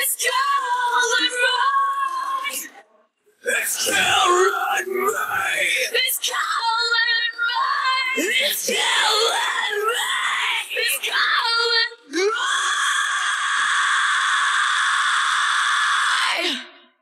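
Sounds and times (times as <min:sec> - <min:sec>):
long held scream: 0:12.4 - 0:16.7.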